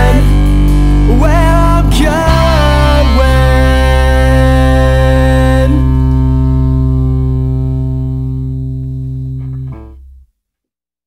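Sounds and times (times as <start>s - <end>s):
punk rock guitar and bass chord: 0.0s - 10.2s.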